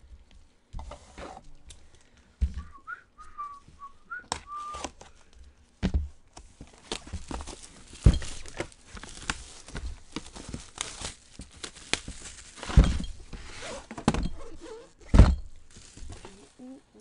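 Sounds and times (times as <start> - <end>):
person whistling: 2.6 - 4.9.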